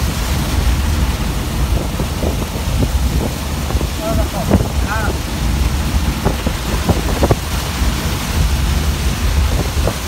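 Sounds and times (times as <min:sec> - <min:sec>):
heavy rain drumming on van: 0:00.0 - 0:10.0
van driving on wet road: 0:00.0 - 0:10.0.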